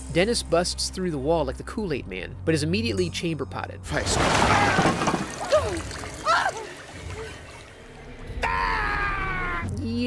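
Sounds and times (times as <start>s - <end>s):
person crying out high-pitched: 8.4s - 10.0s.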